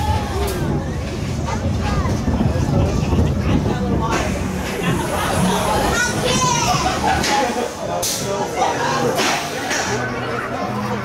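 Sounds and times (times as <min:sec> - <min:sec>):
roller coaster train rumbling: 0:00.0 - 0:11.0.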